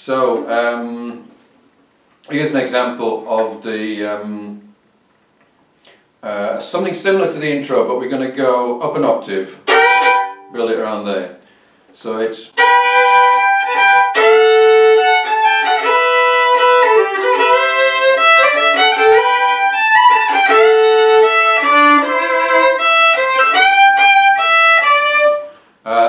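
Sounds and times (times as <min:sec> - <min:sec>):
solo fiddle melody: 0:09.6 - 0:10.6, 0:12.6 - 0:25.6.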